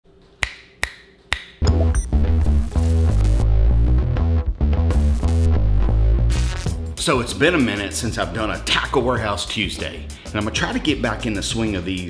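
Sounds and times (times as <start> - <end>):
finger snaps: 0.4 - 1.8
music with heavy bass line: 1.8 - 7.0.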